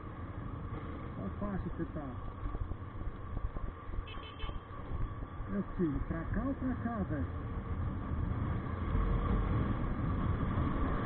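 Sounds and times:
motorcycle engine rumble: 0:00.0 - 0:11.0.

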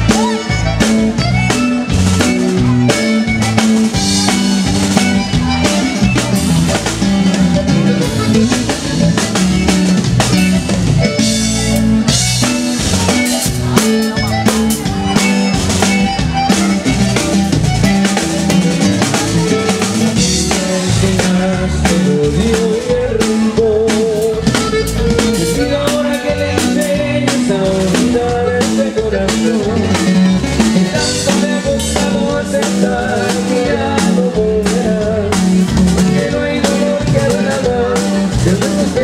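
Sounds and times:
bass: 0:00.0 - 0:39.0
drum kit beat: 0:00.0 - 0:39.0
keyboard: 0:00.0 - 0:39.0
twelve-string guitar strummed: 0:00.0 - 0:39.0.

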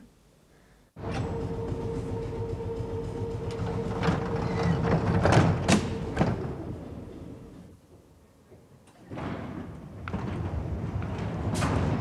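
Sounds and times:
train car rumble and whine: 0:01.0 - 0:08.4, 0:09.5 - 0:12.0.

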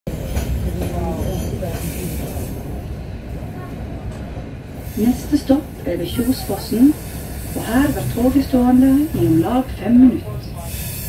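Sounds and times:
train rumbling on track: 0:00.0 - 0:11.0.

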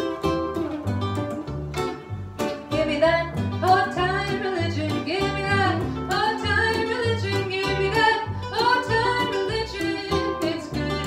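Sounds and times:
plucked acoustic guitar: 0:00.0 - 0:11.0
upright double bass: 0:00.0 - 0:11.0
woman singing slow melody: 0:02.8 - 0:11.0.

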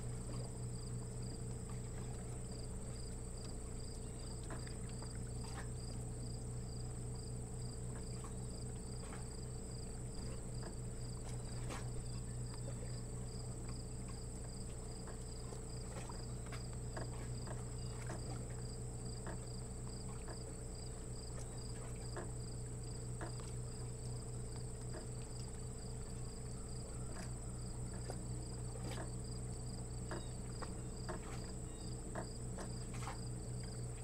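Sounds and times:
crickets trilling: 0:00.0 - 0:34.0
low steady hum: 0:00.0 - 0:34.0.

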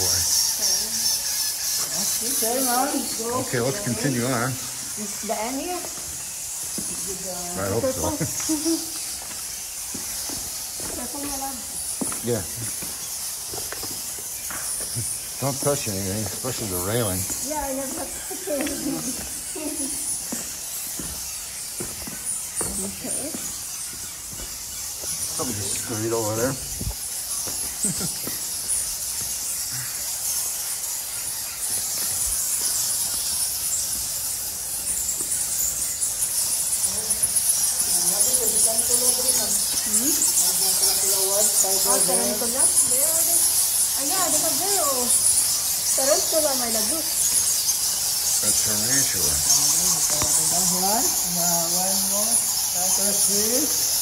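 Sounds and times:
fast pulsing chirr: 0:00.0 - 0:54.0
steady high hiss: 0:00.0 - 0:54.0
people laughing: 0:18.1 - 0:20.0, 0:27.8 - 0:28.4
low voices: 0:48.4 - 0:53.8.

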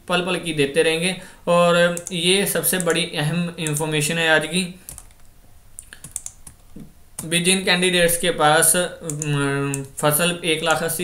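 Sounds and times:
computer keyboard clicks: 0:01.9 - 0:02.2, 0:04.9 - 0:07.3, 0:09.0 - 0:09.9.

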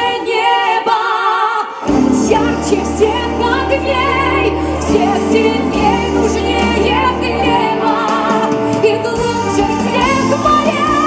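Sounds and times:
woman singing with vibrato: 0:00.0 - 0:11.0
band playing: 0:01.9 - 0:11.0.

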